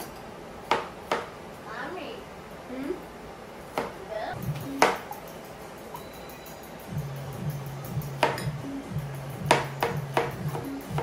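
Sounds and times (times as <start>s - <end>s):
sharp percussive hits: 4.4s - 8.6s.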